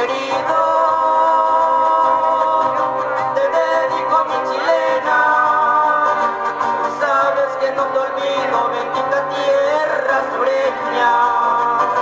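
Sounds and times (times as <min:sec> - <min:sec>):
male duo singing in harmony: 0:00.0 - 0:12.0.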